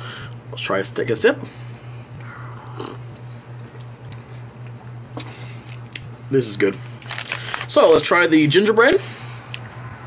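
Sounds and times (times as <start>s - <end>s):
low electrical hum: 0.0s - 10.0s
person sipping and swallowing: 2.2s - 3.1s.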